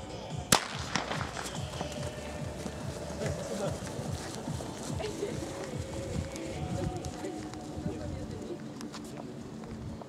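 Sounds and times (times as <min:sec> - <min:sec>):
starting pistol firing: 0:00.5 - 0:01.3.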